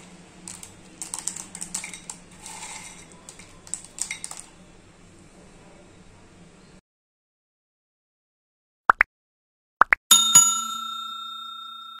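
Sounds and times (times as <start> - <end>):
bell ringing: 10.1 - 12.0.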